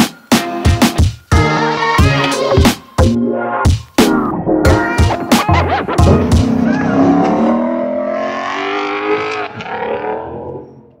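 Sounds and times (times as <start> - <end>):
car engine accelerating past: 6.5 - 10.6.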